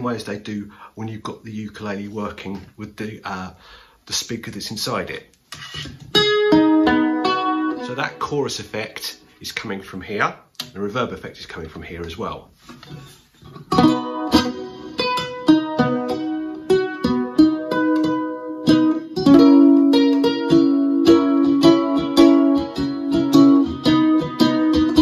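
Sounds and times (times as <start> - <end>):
ukulele strummed through amplifier: 5.6 - 8.5, 13.5 - 25.0.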